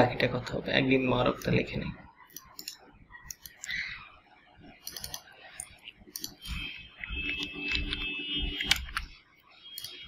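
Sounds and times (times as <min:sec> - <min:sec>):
computer mouse clicks: 0:02.3 - 0:03.9, 0:04.8 - 0:10.0.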